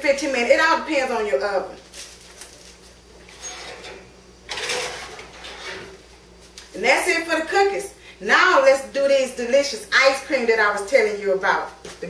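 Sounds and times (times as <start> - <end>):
metal pan scraping clatter: 3.3 - 6.0.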